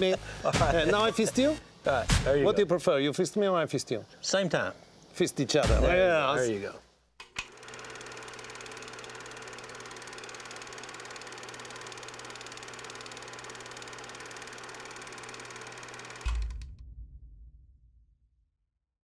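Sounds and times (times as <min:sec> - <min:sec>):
film projector clatter: 0:07.2 - 0:16.8
projector stopping thump: 0:09.8 - 0:16.9.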